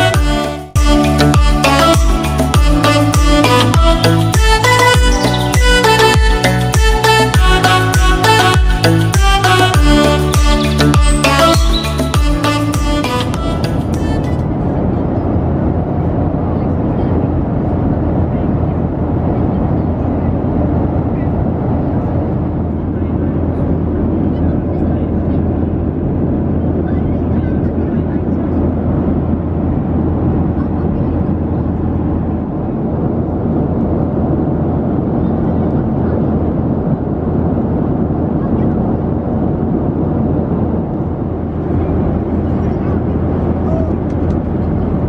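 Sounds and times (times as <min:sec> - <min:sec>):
airliner cabin roar: 0:00.0 - 0:45.0
passengers murmuring: 0:13.1 - 0:33.2, 0:35.0 - 0:37.4, 0:38.1 - 0:45.0.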